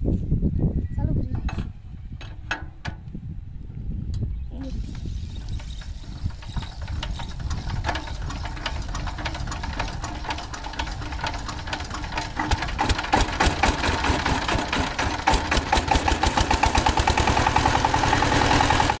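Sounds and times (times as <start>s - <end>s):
diesel engine being hand-cranked: 4.8s - 19.0s
diesel engine chugging: 4.8s - 19.0s.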